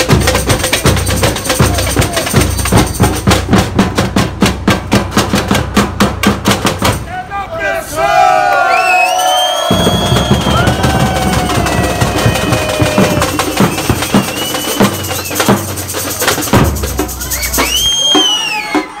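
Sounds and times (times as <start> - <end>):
bass drums: 0.0 - 7.1, 9.7 - 19.0
snare drums: 0.0 - 7.1, 9.6 - 19.0.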